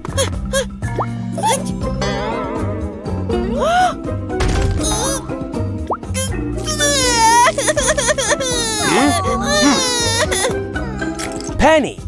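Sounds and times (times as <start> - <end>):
soft background music: 0.0 - 12.0
cartoon child crying: 4.8 - 5.2, 6.2 - 11.1.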